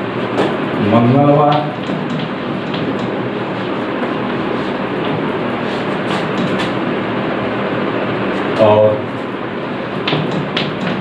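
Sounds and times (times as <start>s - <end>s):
chalk on blackboard: 5.6s - 6.8s.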